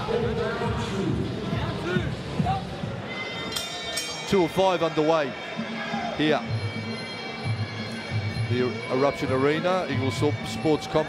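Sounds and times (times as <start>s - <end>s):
background music: 0.0s - 11.0s
voices in a hall: 0.0s - 11.0s
fight bell ringing: 3.4s - 5.1s.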